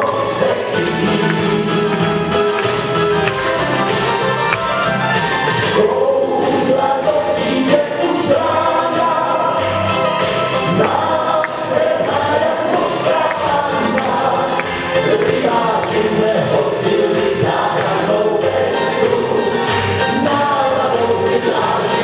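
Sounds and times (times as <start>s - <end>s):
instrumental accompaniment: 0.0s - 22.0s
man singing into microphone: 5.8s - 9.9s, 10.6s - 22.0s.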